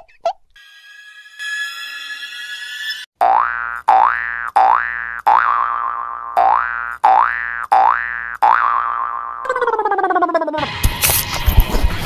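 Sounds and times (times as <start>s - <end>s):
cartoon boing sound effect: 3.2s - 10.7s.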